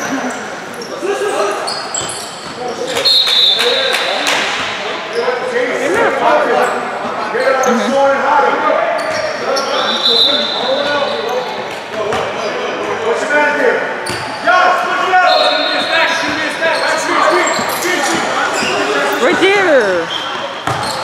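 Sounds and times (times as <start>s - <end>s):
voices echoing in gym: 0.0s - 21.0s
basketball bouncing on court: 20.6s - 21.0s.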